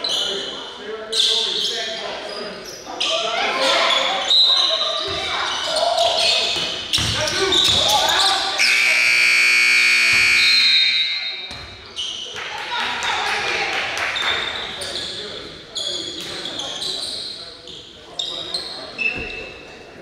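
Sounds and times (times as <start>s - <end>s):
shoe squeaks on court: 0.0s - 8.5s, 14.2s - 19.7s
scoreboard horn: 8.6s - 10.8s.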